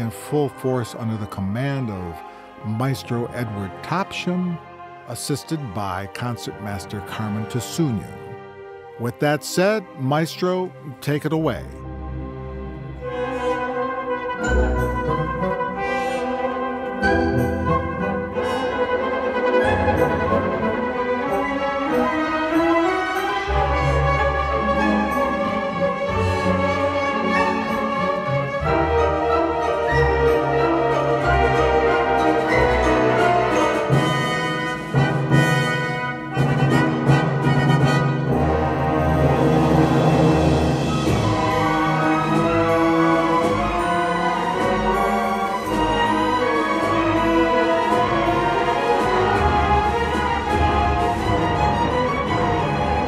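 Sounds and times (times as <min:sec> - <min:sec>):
bowed strings: 0:00.0 - 0:53.0
brass chords: 0:00.0 - 0:53.0
symphony orchestra playing: 0:00.0 - 0:53.0.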